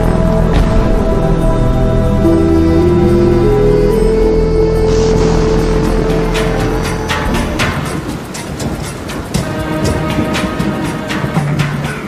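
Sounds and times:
soundtrack music long note: 0.0s - 8.8s
heavy rain hiss: 0.0s - 12.0s.

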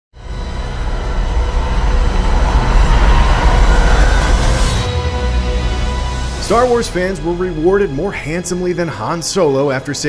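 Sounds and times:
deep rumbling engine roar: 0.2s - 8.1s
steady whining tones: 0.2s - 8.9s.

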